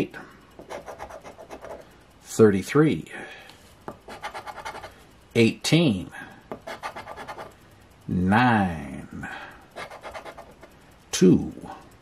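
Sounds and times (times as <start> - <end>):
coin scraping lottery ticket: 9.8 - 10.7.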